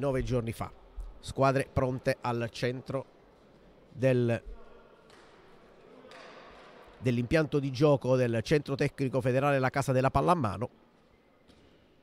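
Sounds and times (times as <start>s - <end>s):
sports hall ambience: 0.0s - 12.0s.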